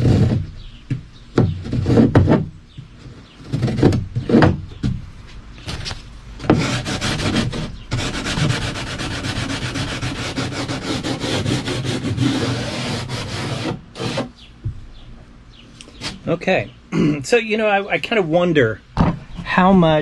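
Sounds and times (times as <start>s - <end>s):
sandpaper rubbing on wood: 6.5s - 14.4s.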